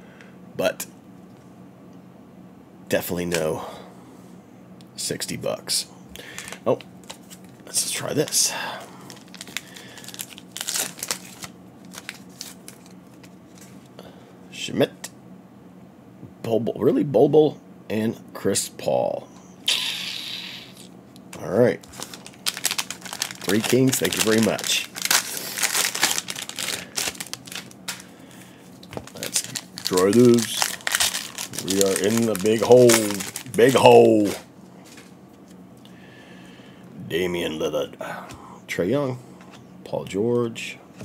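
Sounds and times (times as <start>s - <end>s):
foil wrapper crinkling: 6.3s - 13.9s, 21.8s - 35.1s.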